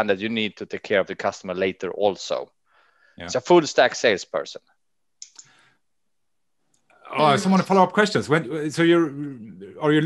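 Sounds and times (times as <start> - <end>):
faint sharp clicks: 5.2 - 5.6.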